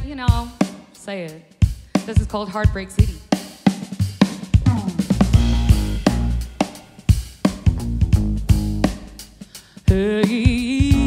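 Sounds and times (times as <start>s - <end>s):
drum kit beat: 0.0s - 11.0s
sustained low notes: 5.1s - 6.6s.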